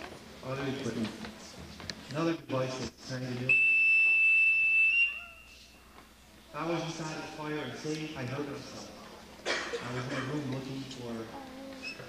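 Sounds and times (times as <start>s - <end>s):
high-pitched electronic alarm tone: 3.5s - 5.7s.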